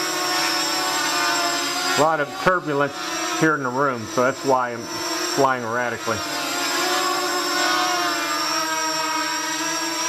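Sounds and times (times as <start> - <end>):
quadcopter motors whining: 0.0 - 10.0.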